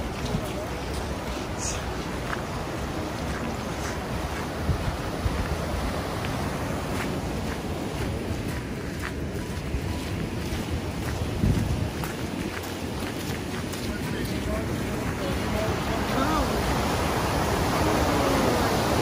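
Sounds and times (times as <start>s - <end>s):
stream rushing over rocks: 0.0s - 19.0s
wind buffeting microphone: 0.0s - 19.0s.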